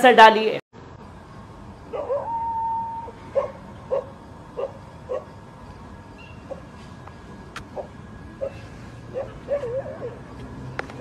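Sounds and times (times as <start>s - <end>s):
steady held tone: 0.8s - 6.7s
dog barking: 1.9s - 2.4s, 3.3s - 5.3s, 7.7s - 10.3s.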